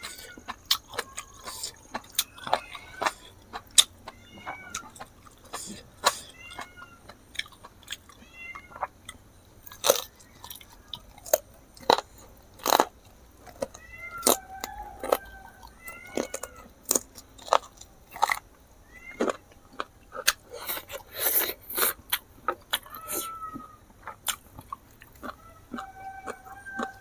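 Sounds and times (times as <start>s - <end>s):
man chewing wetly: 0.0s - 27.0s
cat mewing: 1.0s - 3.4s, 4.0s - 5.0s, 6.0s - 7.2s, 8.1s - 8.9s, 13.6s - 16.7s, 18.8s - 19.5s, 22.8s - 23.8s.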